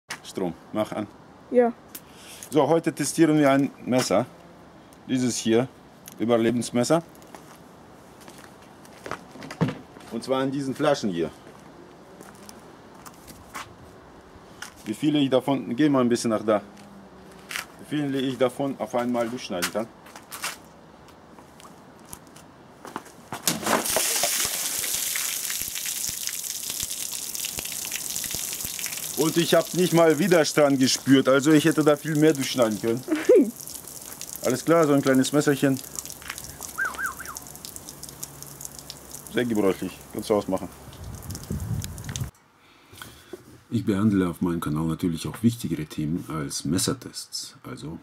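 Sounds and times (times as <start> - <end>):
bird calling: 36.4 - 38.4.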